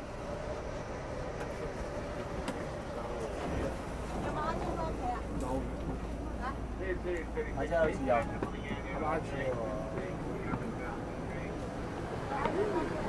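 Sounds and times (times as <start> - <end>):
train rumble and hiss: 0.0 - 13.0
passengers chattering: 0.2 - 13.0.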